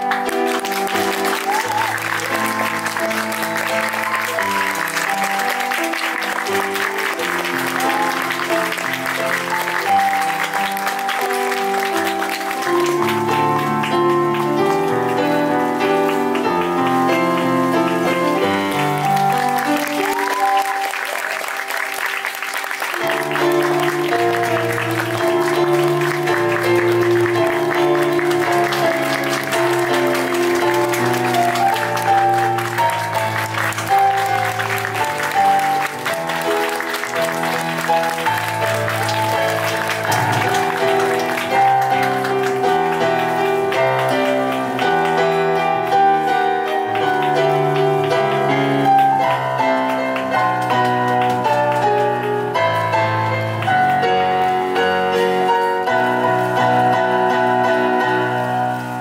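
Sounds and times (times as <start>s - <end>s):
audience applauding: 0.0s - 59.0s
instrumental music: 0.0s - 59.0s.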